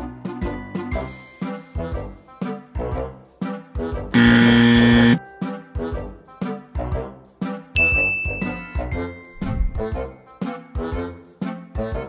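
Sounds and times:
playful background music: 0:00.0 - 0:04.1, 0:05.2 - 0:12.0
wrong-answer buzzer: 0:04.2 - 0:05.2.

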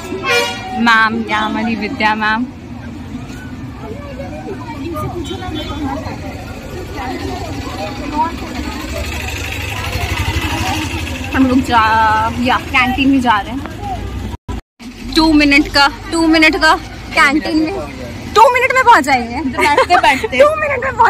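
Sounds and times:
crowd of students chattering: 0:00.0 - 0:12.6, 0:15.8 - 0:21.0
bus engine running: 0:00.0 - 0:21.0.

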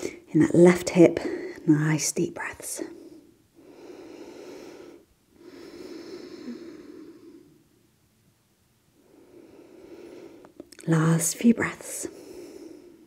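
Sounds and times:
woman breathing deeply: 0:02.9 - 0:07.8, 0:08.9 - 0:10.6, 0:12.1 - 0:13.0.

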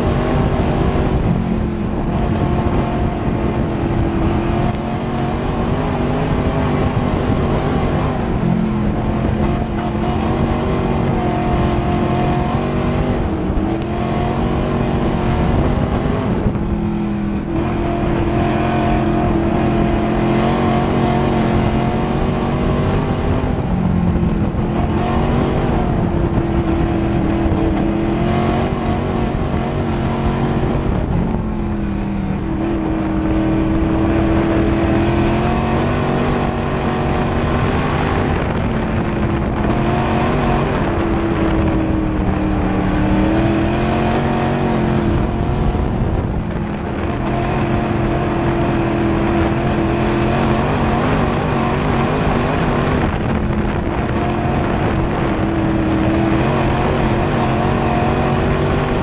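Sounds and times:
race car engine running hard: 0:00.0 - 0:59.0.

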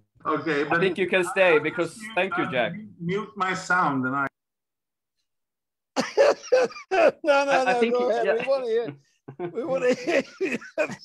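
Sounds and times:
man laughing over video call: 0:06.0 - 0:11.0.

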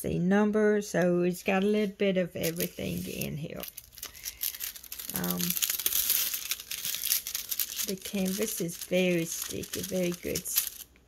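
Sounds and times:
plastic film crinkling: 0:01.8 - 0:11.0.

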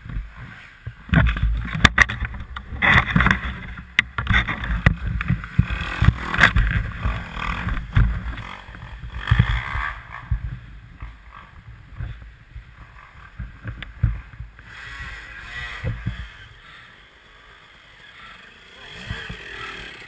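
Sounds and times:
dirt bike knocks and scraping: 0:00.0 - 0:16.5.

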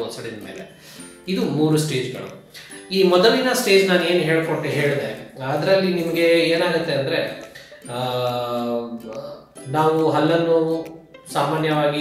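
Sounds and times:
man speaking: 0:00.0 - 0:12.0.

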